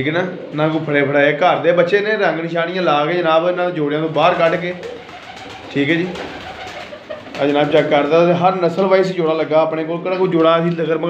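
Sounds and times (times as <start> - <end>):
pigeons cooing: 0.0 - 1.2, 4.1 - 8.3.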